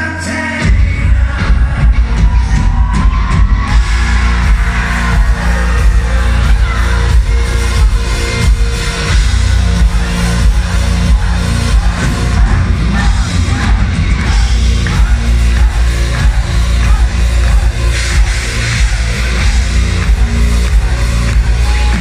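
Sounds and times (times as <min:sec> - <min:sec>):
live electro-rock band: 0:00.0 - 0:22.0
heavy bass and drums: 0:00.6 - 0:22.0.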